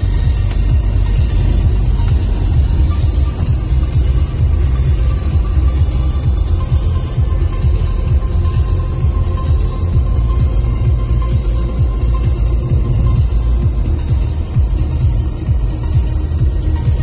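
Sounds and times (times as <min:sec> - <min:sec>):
faint music: 0:00.0 - 0:17.0
road and wind noise in car: 0:00.0 - 0:17.0.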